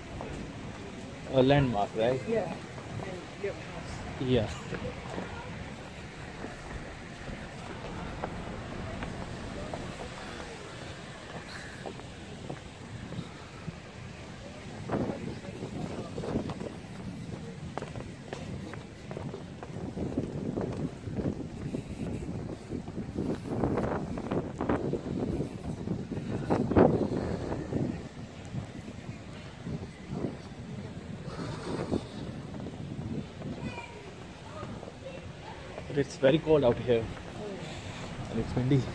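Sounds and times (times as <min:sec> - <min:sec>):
indistinct voices: 0:00.0 - 0:38.9
wind buffeting microphone: 0:00.0 - 0:38.9.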